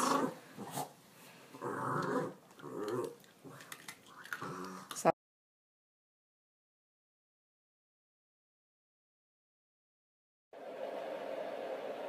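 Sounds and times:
dog growling: 0.0 - 0.9, 1.6 - 5.0.

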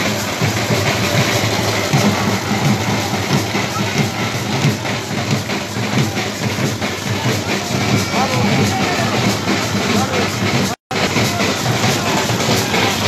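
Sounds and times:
crowd noise: 0.0 - 13.0
low drumbeats: 0.0 - 13.0
music: 0.0 - 13.0.

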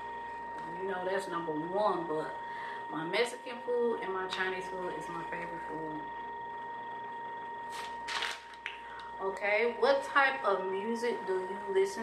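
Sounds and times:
high-pitched electrical whine: 0.0 - 12.0.

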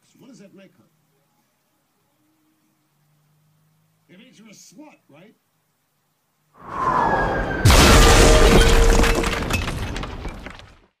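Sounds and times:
debris and glass crackling: 7.6 - 11.0.

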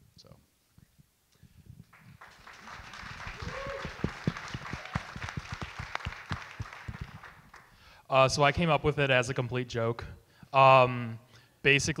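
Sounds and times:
audience applause: 2.0 - 7.8.

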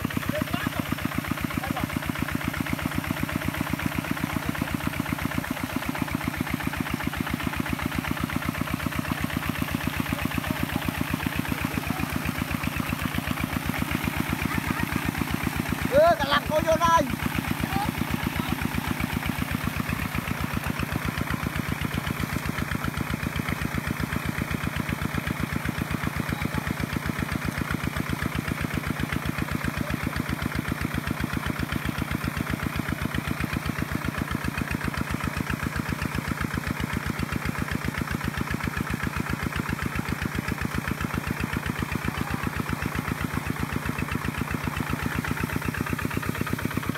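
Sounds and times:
diesel engine chugging: 0.0 - 46.9
wheels churning mud: 0.0 - 46.9.

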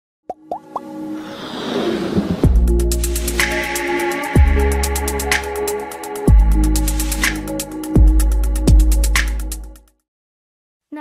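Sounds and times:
quick rising pops: 0.6 - 2.8
whoosh: 1.1 - 3.7.

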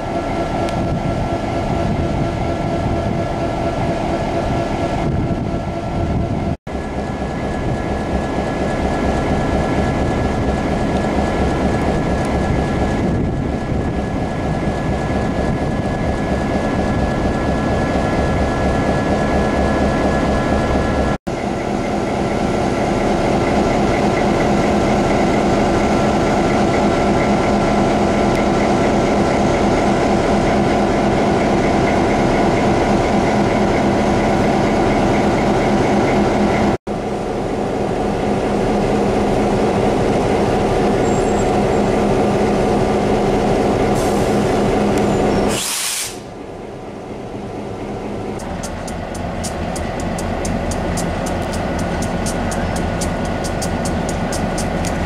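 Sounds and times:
diesel locomotive idling: 0.0 - 55.0.

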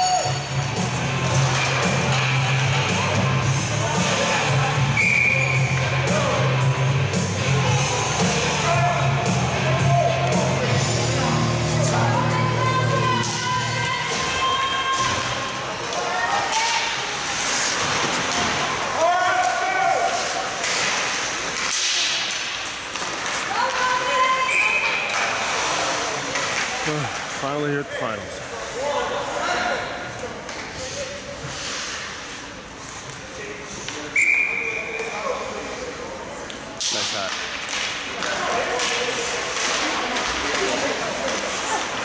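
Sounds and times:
people shouting: 11.2 - 17.1.

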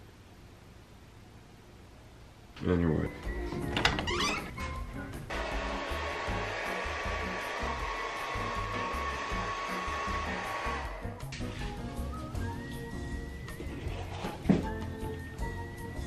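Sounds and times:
background music with low beat: 3.1 - 16.0
hair dryer running: 5.3 - 11.2.

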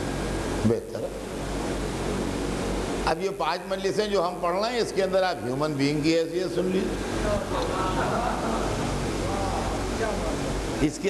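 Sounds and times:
background hiss: 0.0 - 11.0
low hum: 0.0 - 11.0.

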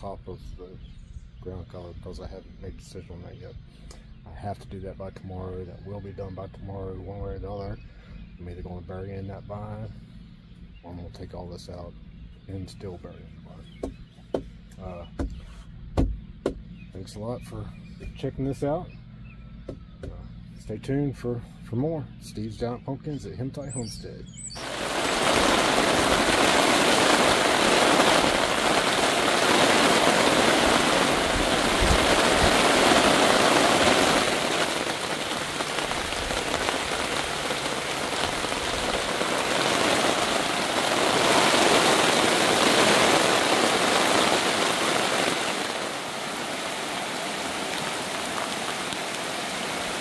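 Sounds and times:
heavy rain pouring: 24.4 - 50.0.

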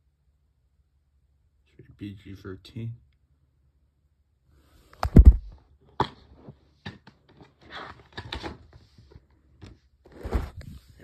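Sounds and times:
plastic case clicks and scrapes: 6.0 - 8.8.

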